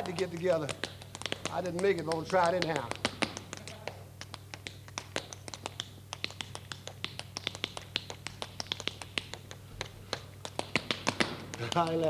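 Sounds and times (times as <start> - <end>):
tap shoes tapping: 0.0 - 12.0.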